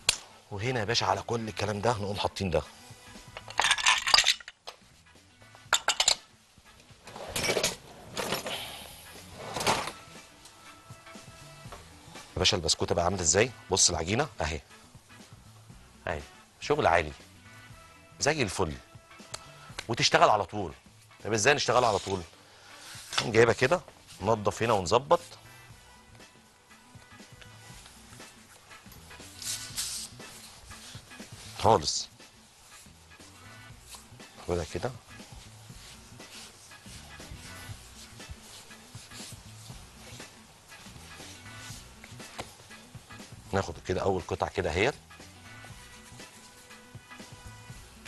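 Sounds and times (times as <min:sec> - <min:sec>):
glass bowl clinking: 0:03.4 - 0:04.6, 0:05.7 - 0:06.2
hands rubbing dough on worktop: 0:22.8 - 0:25.8, 0:27.1 - 0:43.4, 0:45.6 - 0:47.8.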